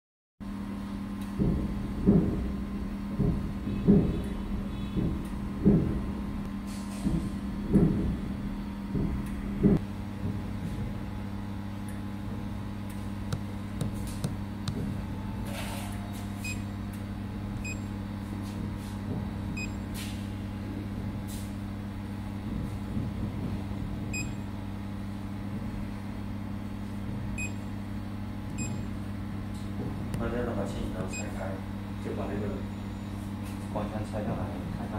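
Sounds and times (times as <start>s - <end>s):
deeper hum: 0.5s - 17.9s
knocks: 3.2s - 6.1s, 13.3s - 15.0s
laser cleaning machine humming: 11.9s - 18.1s.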